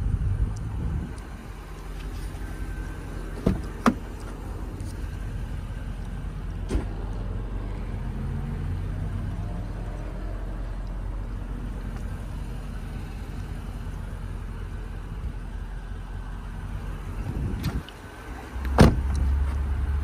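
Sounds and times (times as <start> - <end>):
low vehicle rumble: 0.0 - 20.0.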